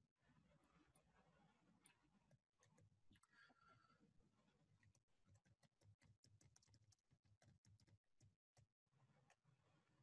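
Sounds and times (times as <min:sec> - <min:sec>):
keyboard typing: 0:05.3 - 0:08.3.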